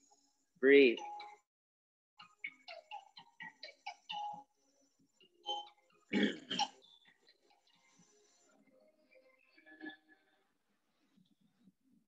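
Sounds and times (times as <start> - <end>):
person clearing throat: 6.1 - 6.8.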